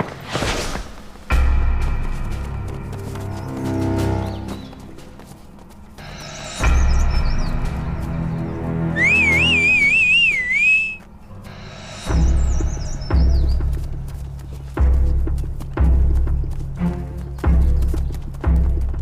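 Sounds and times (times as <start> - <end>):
tense music with low drum hits: 1.2 - 5.2, 6.0 - 9.0, 11.8 - 19.0
short bird-like chirps: 8.9 - 11.0
warbling bird-like whistle: 8.9 - 11.0.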